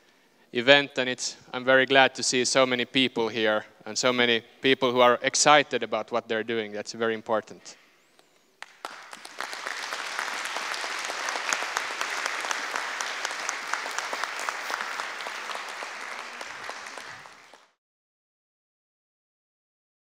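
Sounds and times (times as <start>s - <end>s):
audience applauding: 8.6s - 17.8s.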